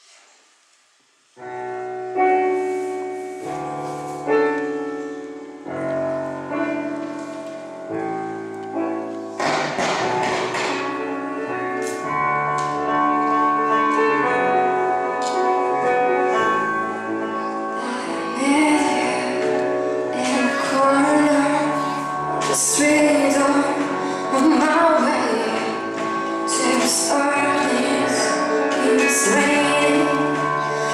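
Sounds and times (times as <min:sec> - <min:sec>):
live band playing: 0:08.3 - 0:30.9.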